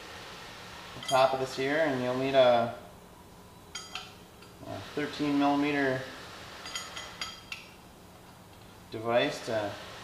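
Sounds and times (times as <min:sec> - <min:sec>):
metal bolts clinking together: 0:01.0 - 0:01.4, 0:03.7 - 0:04.6, 0:06.6 - 0:08.7.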